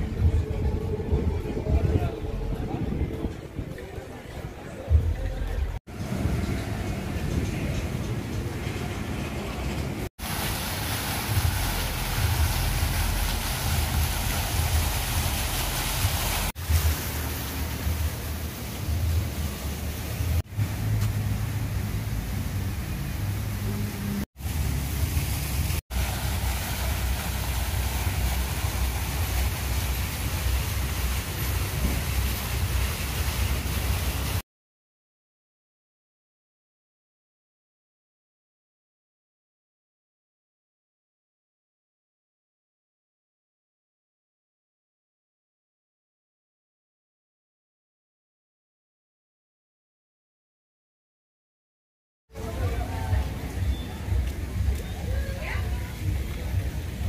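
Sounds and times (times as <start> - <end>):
outdoor street rumble: 0.0 - 34.4, 52.3 - 57.0.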